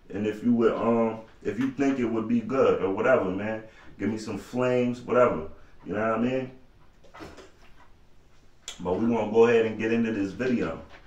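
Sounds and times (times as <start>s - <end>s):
man speaking: 0.0s - 6.6s, 8.7s - 11.0s.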